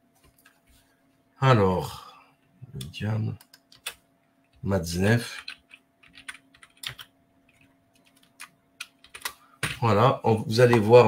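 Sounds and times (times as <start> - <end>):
typing on computer keyboard: 3.4 - 4.0, 5.3 - 9.8.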